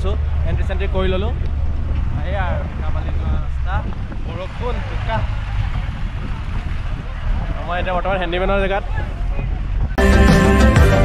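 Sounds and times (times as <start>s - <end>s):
wind on microphone: 0.0s - 10.0s
bus rumbling on dirt road: 0.0s - 11.0s
music with steady beat: 10.0s - 11.0s.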